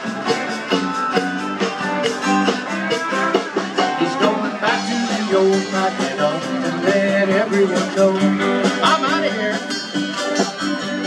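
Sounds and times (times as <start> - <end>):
live band playing country-rock: 0.0 - 11.0.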